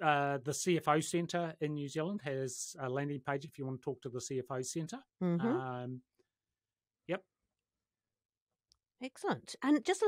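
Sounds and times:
person saying yep: 0:05.4 - 0:05.8.

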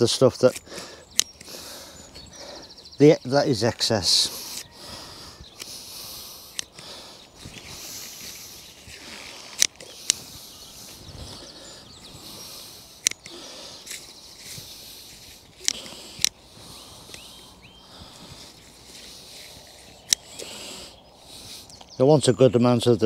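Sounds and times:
leaves rustling: 0:03.2 - 0:21.9
scissors snipping leaves: 0:08.9 - 0:10.3.

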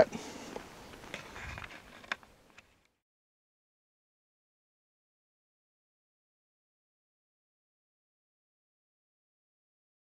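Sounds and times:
faint wind noise: 0:00.0 - 0:02.9.

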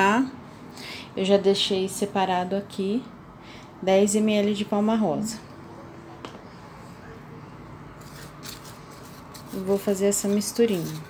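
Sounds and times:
wooden spatula scraping ceramic bowl: 0:08.0 - 0:11.0.

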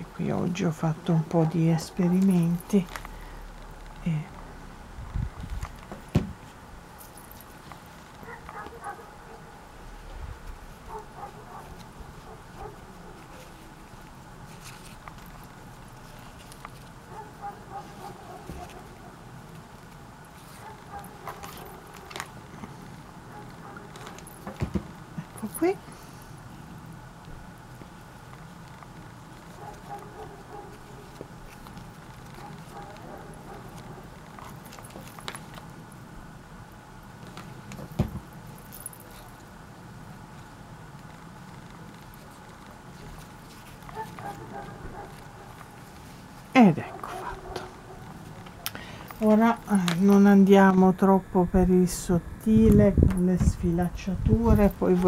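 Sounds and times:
low background hum: 0:00.0 - 0:55.0
ribbon handling sounds: 0:10.4 - 0:26.6, 0:27.6 - 0:35.9, 0:40.3 - 0:50.2.

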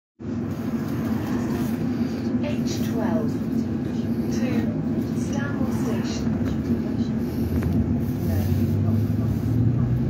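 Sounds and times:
bus engine humming: 0:00.2 - 0:10.0
cabin rumble: 0:00.2 - 0:10.0.

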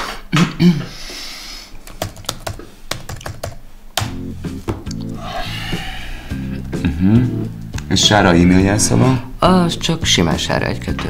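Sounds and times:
laptop keyboard typing: 0:01.8 - 0:04.1
background music: 0:04.0 - 0:11.0.

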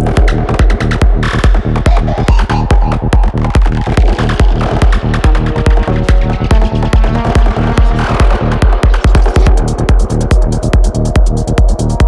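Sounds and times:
four-on-the-floor kick drum: 0:00.0 - 0:12.0
rolling synthesizer bassline: 0:00.0 - 0:12.0.

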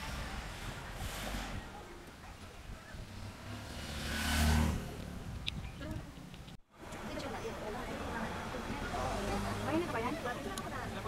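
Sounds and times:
car passing: 0:00.0 - 0:05.5, 0:06.9 - 0:11.0.

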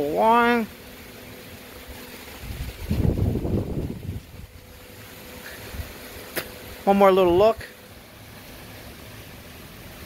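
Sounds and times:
wind rumbling on microphone: 0:02.3 - 0:04.8.

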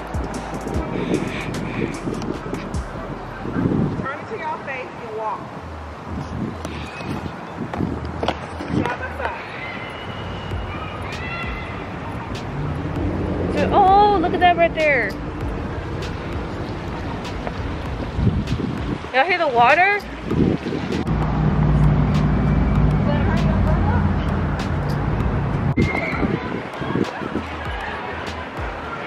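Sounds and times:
city noise hiss: 0:00.0 - 0:29.0
voices: 0:08.5 - 0:17.8, 0:19.1 - 0:20.3, 0:21.6 - 0:29.0
drawn-out falling vocal call: 0:09.3 - 0:13.4.

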